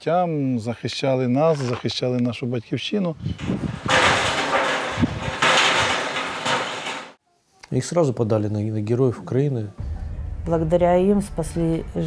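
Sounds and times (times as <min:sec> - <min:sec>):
wind rushing in gusts: 0:03.2 - 0:05.4.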